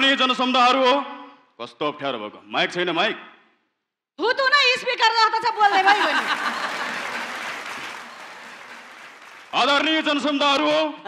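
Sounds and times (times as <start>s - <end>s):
audience applauding: 5.5s - 10.4s.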